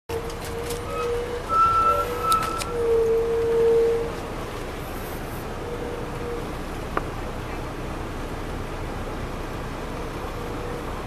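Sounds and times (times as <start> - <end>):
higher faint whine: 0.1 - 6.8
steady whine: 0.1 - 7.4
engine and road rumble: 0.1 - 11.0.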